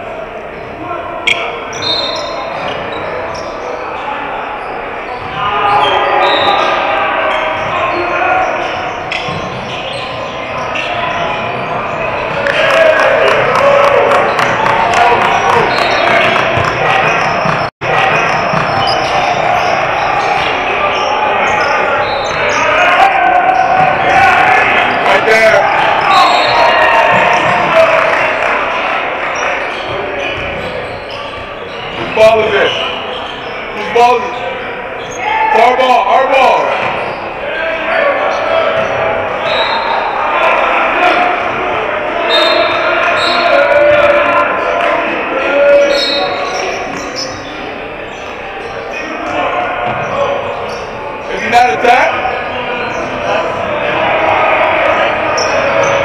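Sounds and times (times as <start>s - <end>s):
people talking and calling out: 0.0s - 56.0s
basketball bouncing on wooden floor: 16.0s - 19.0s.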